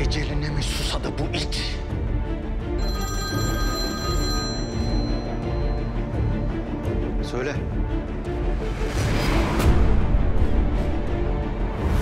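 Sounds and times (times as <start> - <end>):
background music: 0.0 - 12.0
mobile phone ringing: 2.8 - 6.4.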